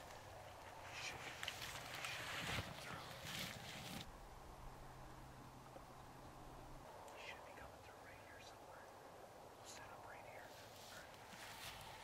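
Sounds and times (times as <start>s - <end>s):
man whispering: 0.8s - 3.6s, 7.0s - 11.3s.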